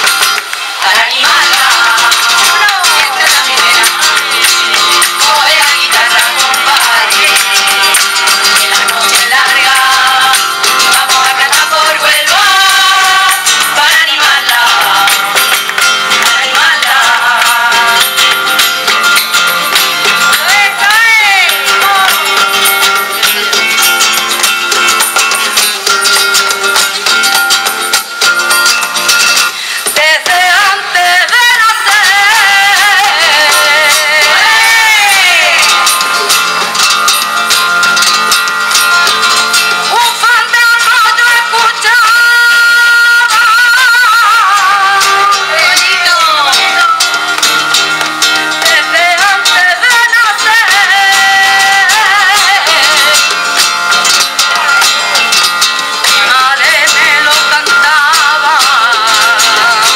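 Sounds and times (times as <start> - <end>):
rhythmic hand clapping: 0.0 - 59.9
strummed acoustic guitar: 0.0 - 59.9
women's group singing: 0.6 - 24.6, 29.9 - 36.3, 39.9 - 47.5, 48.5 - 59.9.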